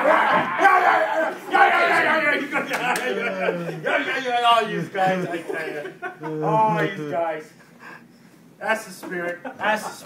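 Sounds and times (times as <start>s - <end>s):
men shouting and hollering: 0.0s - 7.0s.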